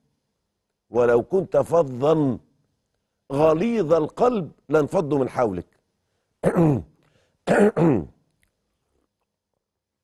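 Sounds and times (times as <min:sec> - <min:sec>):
man clearing his throat: 0:06.4 - 0:06.9, 0:07.5 - 0:08.2.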